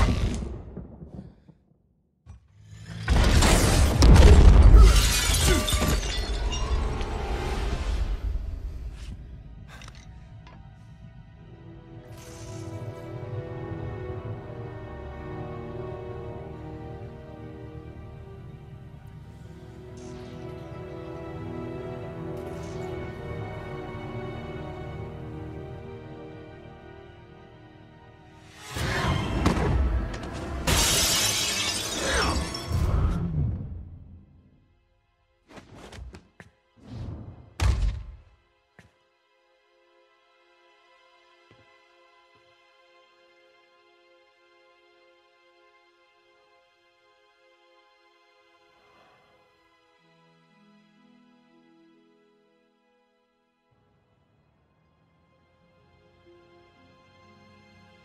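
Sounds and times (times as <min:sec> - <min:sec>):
dramatic film score: 0:00.0 - 0:58.0
breaking debris: 0:03.0 - 0:07.0, 0:30.6 - 0:32.8
glass shattering: 0:03.0 - 0:07.1, 0:30.6 - 0:32.9.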